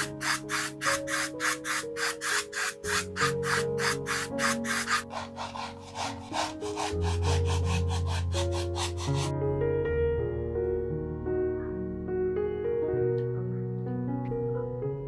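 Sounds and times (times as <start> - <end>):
paintbrush stroking on wood: 0.0 - 9.3
soft background music: 0.0 - 15.0.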